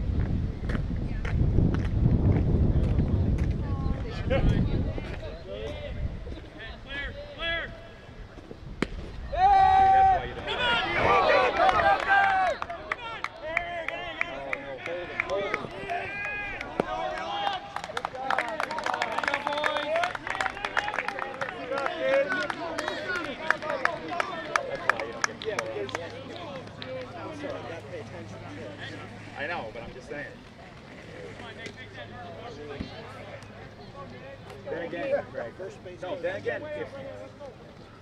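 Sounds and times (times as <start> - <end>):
bat hitting baseball: 8.8 - 9.2
spectators shouting and cheering: 9.2 - 32.0
scattered clapping: 11.4 - 27.8.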